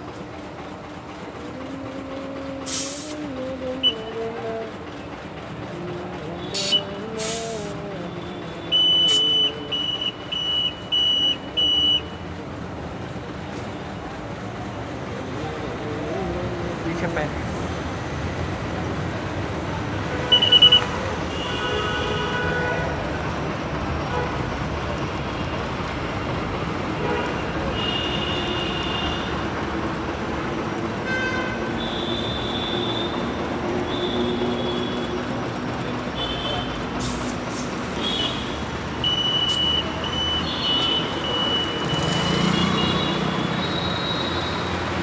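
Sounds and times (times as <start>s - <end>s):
busy road traffic: 0.0s - 45.0s.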